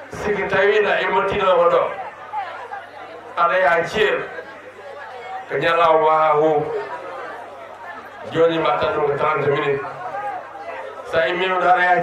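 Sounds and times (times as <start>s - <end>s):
man speaking into a microphone: 0.0s - 2.0s, 3.4s - 4.4s, 5.5s - 6.9s, 8.2s - 10.0s, 11.0s - 12.0s
background chatter: 0.0s - 12.0s.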